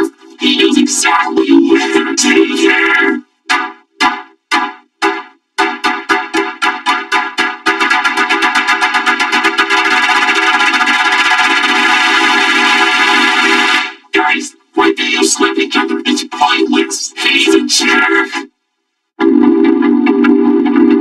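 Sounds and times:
buzzy synthesized cartoon slaps: 0.0 - 18.4.

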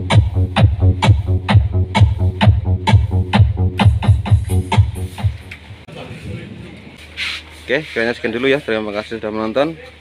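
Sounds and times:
short hiss: 7.0 - 8.0.

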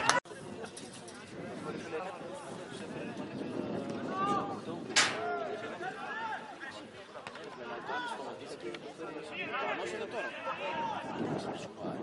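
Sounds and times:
voices calling and talking: 0.0 - 12.0
sharp knock: 5.0 - 5.3.

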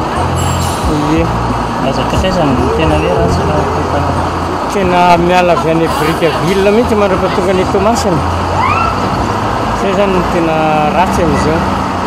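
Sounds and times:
bus engine idling: 0.0 - 12.0
short rising tone: 0.2 - 7.0
man speaking: 0.8 - 8.0.

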